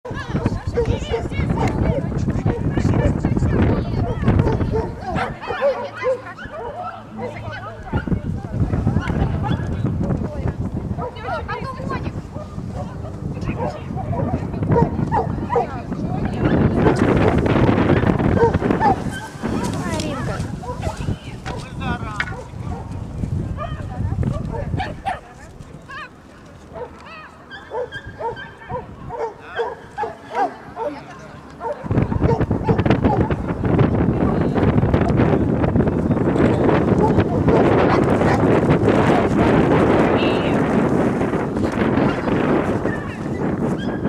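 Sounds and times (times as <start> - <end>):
wind buffeting microphone: 0.0 - 44.0
small dog barking: 4.0 - 8.1, 13.6 - 15.7, 18.4 - 19.3, 26.8 - 31.0, 31.6 - 33.3.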